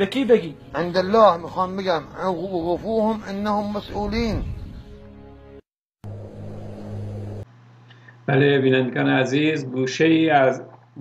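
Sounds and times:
steady low hum: 6.0s - 10.1s.

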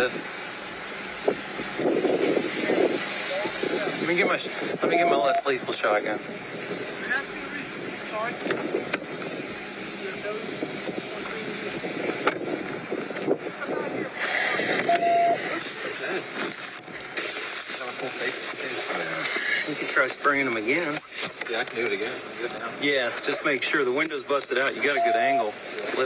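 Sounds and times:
muffled voices: 1.2s - 26.0s.

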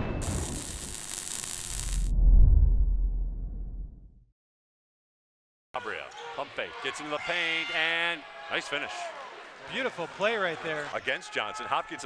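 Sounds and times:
static hiss: 0.2s - 2.1s
low rumble: 1.8s - 4.2s.

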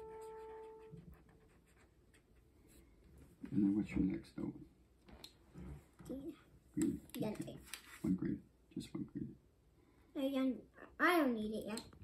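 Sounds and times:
piano note: 0.0s - 1.2s
marker scratching on paper: 0.2s - 2.8s.

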